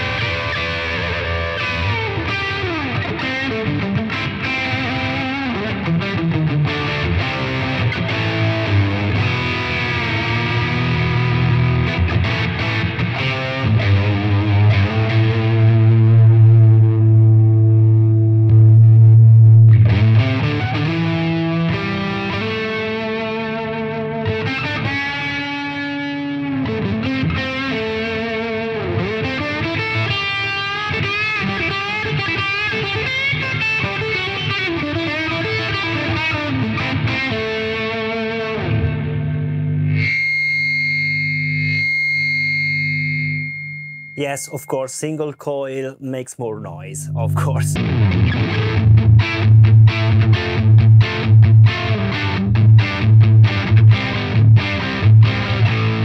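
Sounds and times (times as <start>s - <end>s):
distorted electric guitar: 0.0s - 43.5s, 44.2s - 56.0s
guitar pickup hum and buzz: 0.0s - 44.6s, 46.7s - 56.0s.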